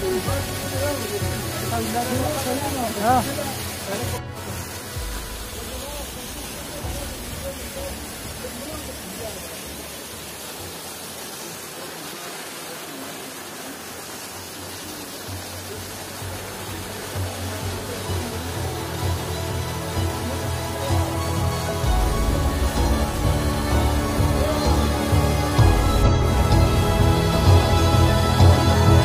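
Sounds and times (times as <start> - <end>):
faint music: 0.0 - 29.0
voices: 0.0 - 29.0
waterfall pouring over rock: 0.0 - 29.0.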